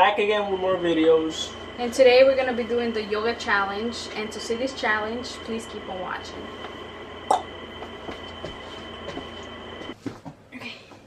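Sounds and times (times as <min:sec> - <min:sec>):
thin high whine: 0:00.0 - 0:10.0
steady electrical hum: 0:00.0 - 0:11.0.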